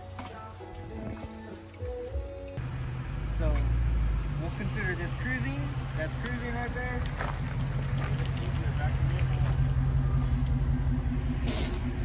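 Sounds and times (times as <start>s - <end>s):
car engine idling: 2.6s - 12.0s
short hiss: 11.4s - 11.8s.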